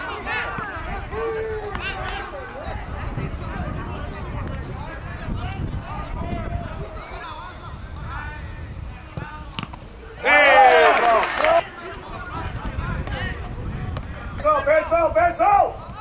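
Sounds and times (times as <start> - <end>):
men shouting and cheering: 0.0 - 8.3, 10.1 - 15.8.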